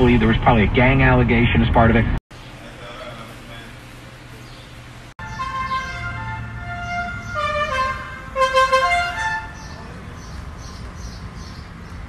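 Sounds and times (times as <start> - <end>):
low street hum: 0.0 - 12.0
musical vehicle horn: 5.2 - 9.8.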